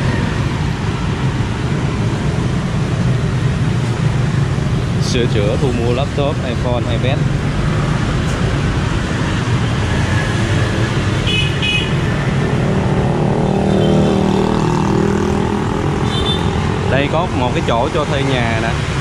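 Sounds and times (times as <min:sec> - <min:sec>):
street traffic: 0:00.0 - 0:19.0
vehicle passing close by: 0:07.0 - 0:19.0.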